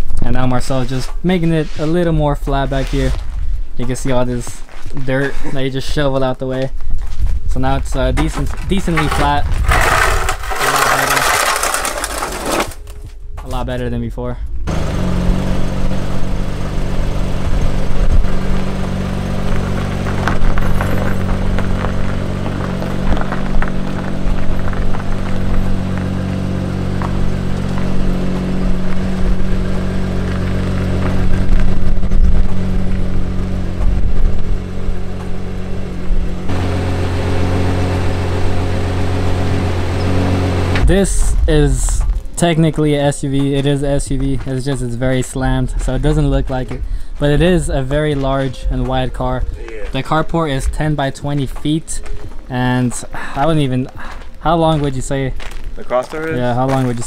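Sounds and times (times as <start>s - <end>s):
car engine idling: 14.7s - 43.0s.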